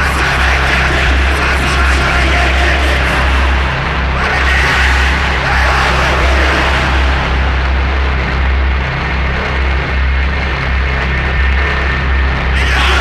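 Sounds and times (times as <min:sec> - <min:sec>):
deep pulsing drone: 0:00.0 - 0:13.0
harsh distorted noise: 0:00.0 - 0:13.0.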